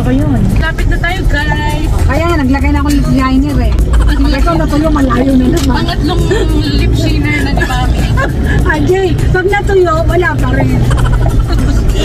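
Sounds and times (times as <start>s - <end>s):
vehicle running low rumble: 0.0s - 12.0s
voices inside a car: 0.0s - 12.0s.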